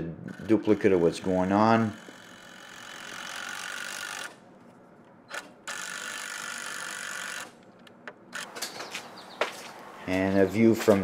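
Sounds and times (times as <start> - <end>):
cordless drill driving screws: 0.3 - 4.4, 5.3 - 7.5.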